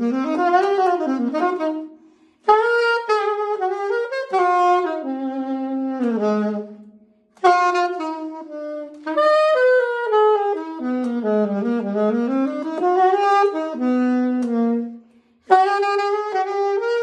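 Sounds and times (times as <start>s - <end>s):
saxophone playing jazz: 0.0s - 17.0s.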